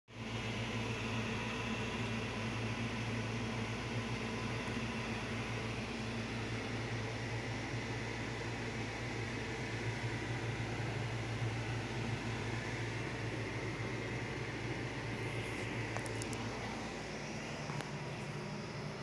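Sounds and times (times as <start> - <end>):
low machine hum: 0.1 - 19.0.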